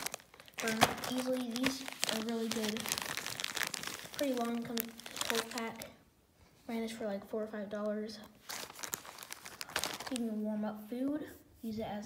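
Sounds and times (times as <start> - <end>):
plastic bag crinkling: 0.0 - 6.0, 8.4 - 10.4.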